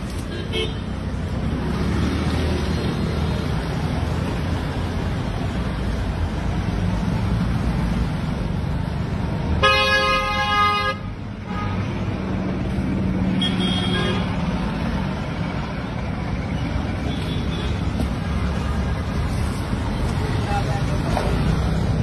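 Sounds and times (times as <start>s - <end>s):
street traffic: 0.0s - 22.0s
vehicle horn: 9.6s - 11.8s, 13.4s - 14.3s.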